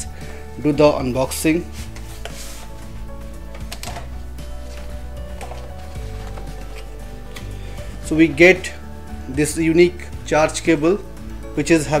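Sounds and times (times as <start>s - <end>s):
background music: 0.0s - 12.0s
cardboard box scrapes and taps: 1.8s - 2.7s.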